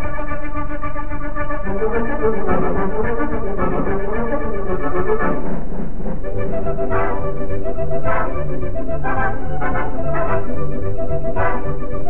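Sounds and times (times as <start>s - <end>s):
dance band playing: 6.8s - 7.3s.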